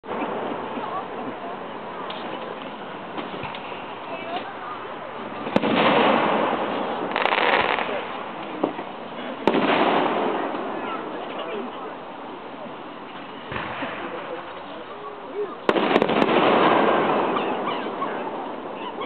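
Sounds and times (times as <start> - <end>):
fireworks bangs: 0.0 - 19.0.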